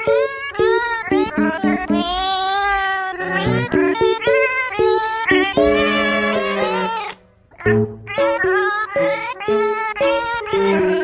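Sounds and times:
pitched cat meows: 0.0 - 11.0
musical backing: 5.3 - 8.6.

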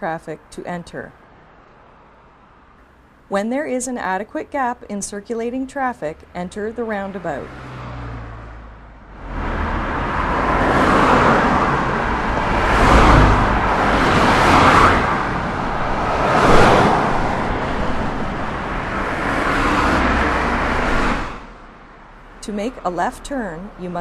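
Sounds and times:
cars driving by: 0.0 - 24.0.

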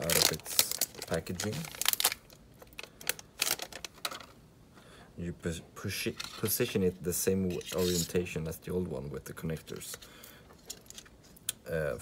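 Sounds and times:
plastic packaging crackling: 0.0 - 4.4.

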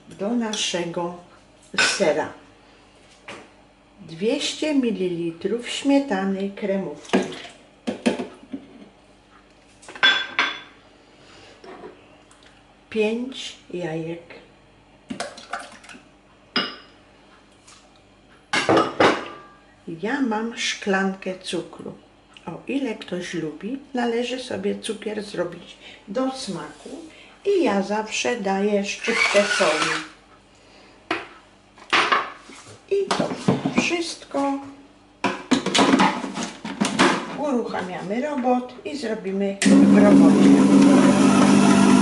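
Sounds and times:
dishes clinking on tiled counter: 9.9 - 10.8, 16.5 - 17.0.

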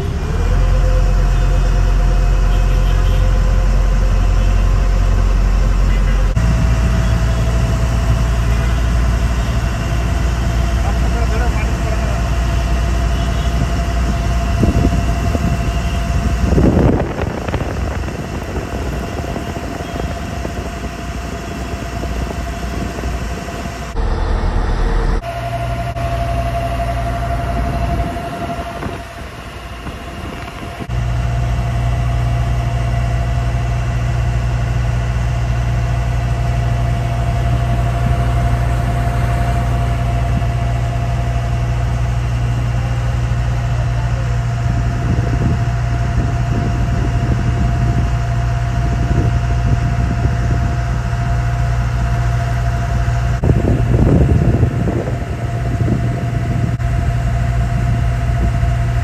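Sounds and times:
boat engine running: 0.0 - 59.0.

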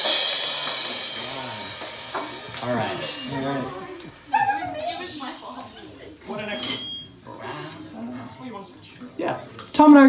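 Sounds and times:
indistinct talking: 0.5 - 10.0.

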